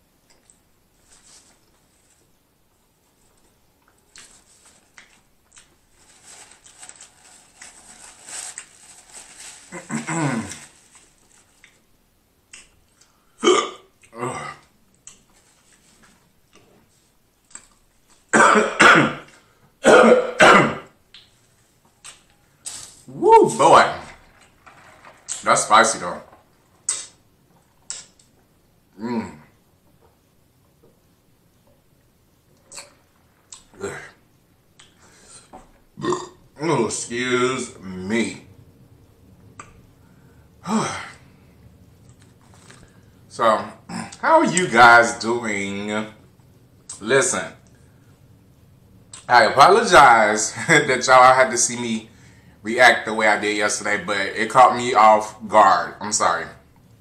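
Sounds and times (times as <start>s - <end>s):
man burping: 9.9s - 10.6s, 13.4s - 14.7s, 28.9s - 29.6s, 36.0s - 36.4s, 40.6s - 41.2s, 43.9s - 44.2s.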